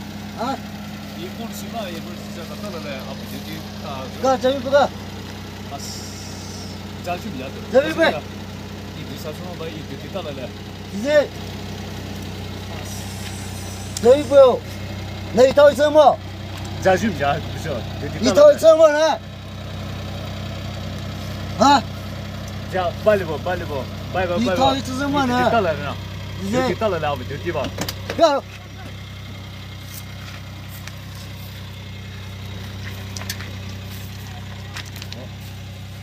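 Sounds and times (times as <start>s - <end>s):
car engine idling: 0.0s - 36.0s
people arguing: 0.3s - 30.2s.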